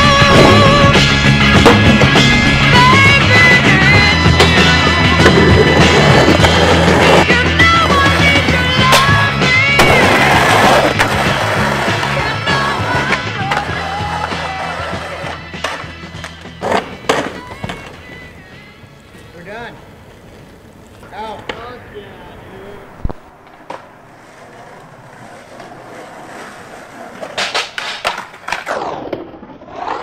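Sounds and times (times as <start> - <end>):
rock music with guitar: 0.0 - 19.3
skateboard clacking on asphalt: 0.3 - 22.0, 22.8 - 30.0.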